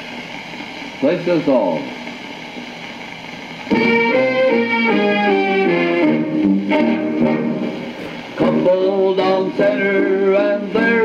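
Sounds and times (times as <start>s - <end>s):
dance band playing a waltz: 3.7s - 11.0s.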